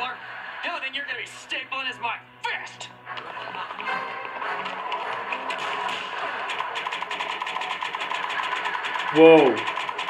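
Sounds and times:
background music: 0:00.0 - 0:10.0
fast mechanical rattle: 0:04.8 - 0:10.0.

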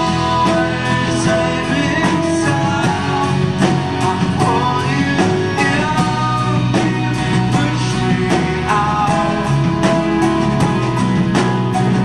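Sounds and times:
bass: 0:00.0 - 0:12.0
drum kit beat: 0:00.0 - 0:12.0
piano accordion: 0:00.0 - 0:12.0.

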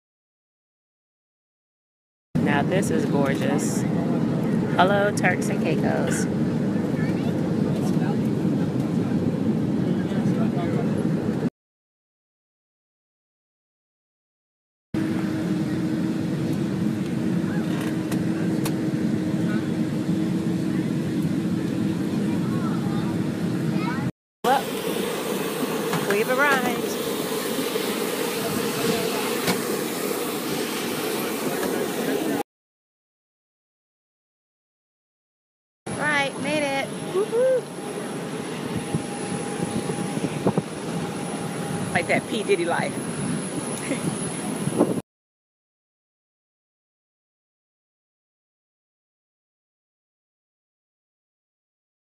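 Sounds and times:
aircraft cabin engine drone: 0:02.4 - 0:11.5, 0:15.0 - 0:32.4, 0:35.9 - 0:45.0
constant low hum: 0:02.4 - 0:11.5, 0:15.0 - 0:32.4, 0:35.9 - 0:45.0.

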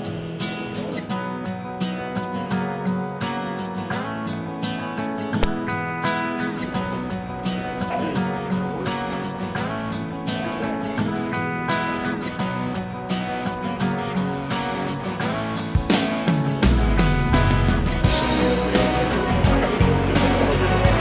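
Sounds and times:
strummed acoustic guitar music: 0:00.0 - 0:21.0.

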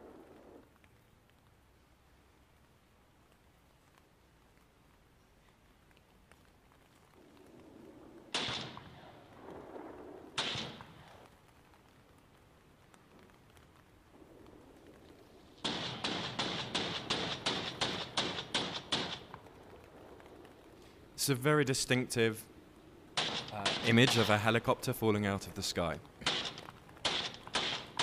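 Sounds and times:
rapid sharp cracks: 0:08.2 - 0:11.6, 0:12.9 - 0:21.0, 0:23.1 - 0:24.8, 0:25.9 - 0:28.0
sharp bangs: 0:08.3 - 0:09.2, 0:10.3 - 0:11.2, 0:15.6 - 0:19.5, 0:23.2 - 0:24.6, 0:26.2 - 0:28.0.

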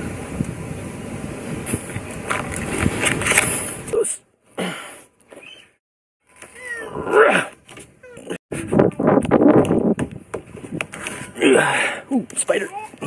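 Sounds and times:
man grunting with effort: 0:07.0 - 0:07.6.

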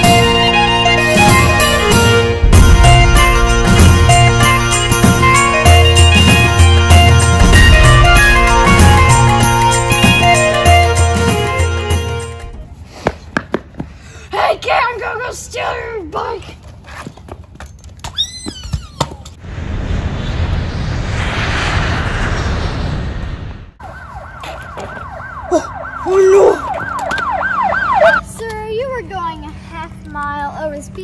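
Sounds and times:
steady rushing noise: 0:19.4 - 0:23.8
police siren wailing: 0:23.8 - 0:28.3.

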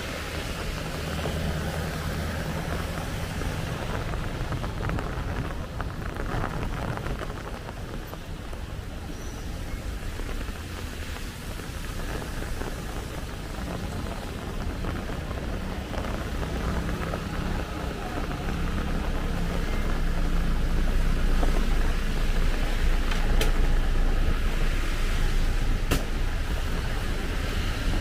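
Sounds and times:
bus engine rumbling: 0:00.0 - 0:28.0
rain on wet pavement: 0:00.0 - 0:28.0.

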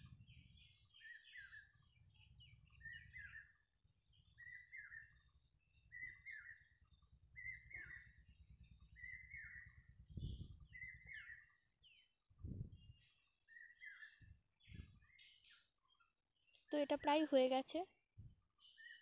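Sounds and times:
bird chirping: 0:00.0 - 0:17.2, 0:18.5 - 0:19.0.

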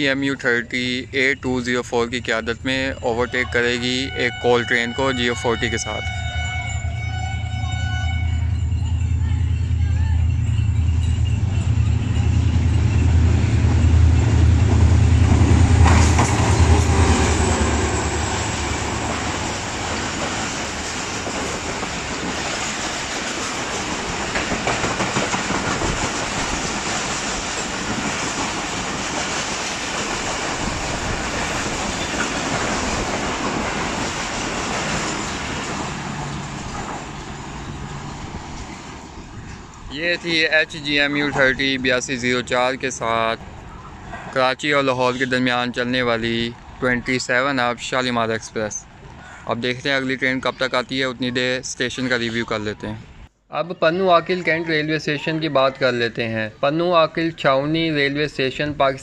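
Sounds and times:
locomotive engine drone: 0:00.0 - 0:44.2
train wheels rushing: 0:03.7 - 0:45.0
wheels clattering over rail joints: 0:10.3 - 0:42.5.

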